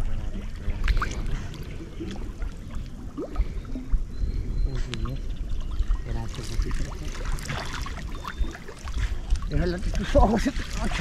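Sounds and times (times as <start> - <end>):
water sloshing and lapping: 0.0 - 11.0
small splashes: 0.7 - 3.7, 5.8 - 11.0.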